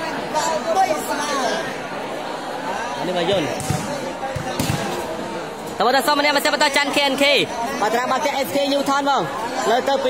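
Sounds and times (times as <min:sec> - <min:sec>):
crowd chatter in large hall: 0:00.0 - 0:10.0
volleyball thudding: 0:03.3 - 0:05.1.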